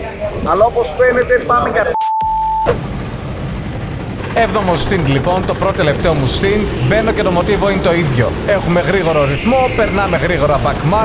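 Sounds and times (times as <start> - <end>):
background music: 0.0 - 11.0
electronic test tone beep: 1.9 - 2.7.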